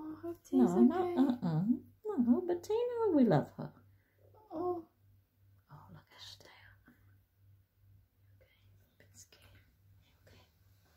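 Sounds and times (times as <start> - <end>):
faint low hum: 0.0 - 10.9.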